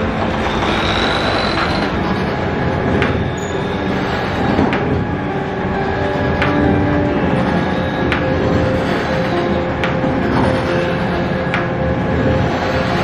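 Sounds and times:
sharp machine clacks: 0:00.0 - 0:05.0
machinery rumbling: 0:00.0 - 0:13.0
thin machine squeal: 0:00.3 - 0:02.6, 0:03.2 - 0:04.6.

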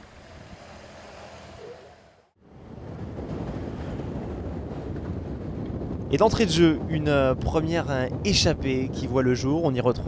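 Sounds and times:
wind noise rushing: 0:02.4 - 0:10.0.

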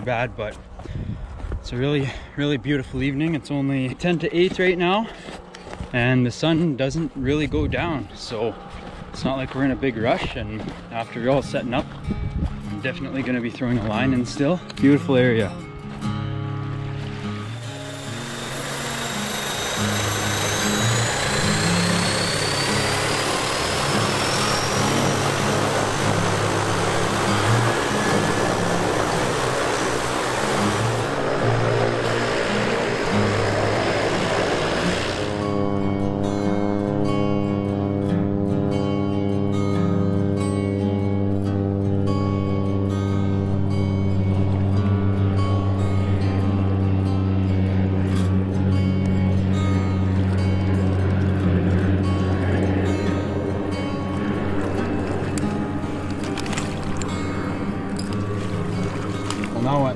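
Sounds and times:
floatplane engine and propeller: 0:00.0 - 0:59.9
background music: 0:10.8 - 0:59.9.

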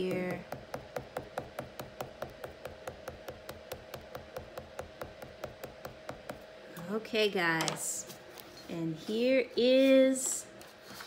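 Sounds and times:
crayon tapping on paper: 0:00.0 - 0:06.5.

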